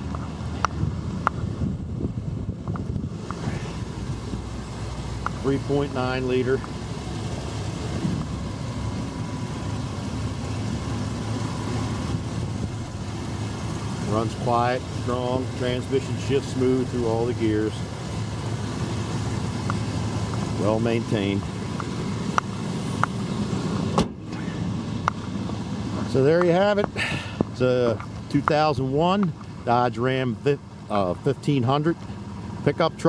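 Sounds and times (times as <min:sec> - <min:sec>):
truck engine idling: 0:00.0 - 0:33.0.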